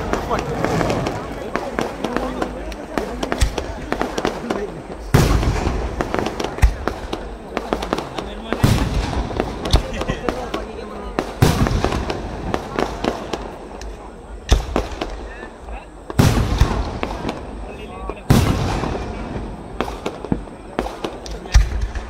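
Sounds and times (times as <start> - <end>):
firework shells booming: 0.0 - 22.0
fireworks crackling and popping: 0.0 - 22.0.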